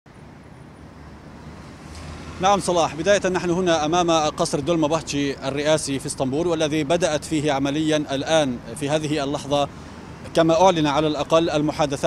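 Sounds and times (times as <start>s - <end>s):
passing cars rumbling: 0.1s - 12.0s.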